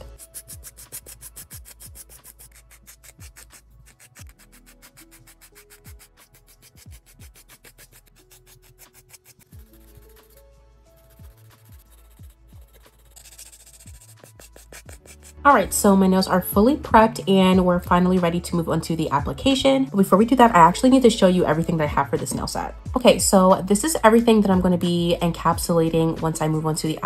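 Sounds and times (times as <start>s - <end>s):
nail file rasping on plastic: 0.0s - 10.4s, 11.0s - 15.4s.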